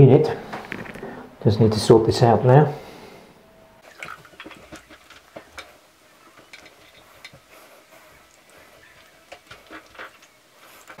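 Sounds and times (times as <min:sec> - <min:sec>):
light metal scraping: 0:03.8 - 0:11.0.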